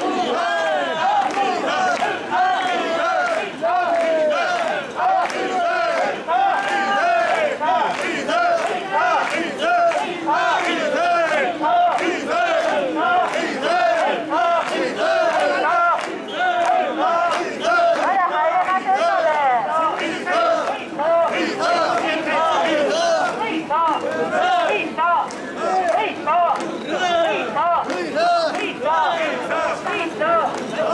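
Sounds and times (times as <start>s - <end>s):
men chanting in unison: 0.0s - 30.9s.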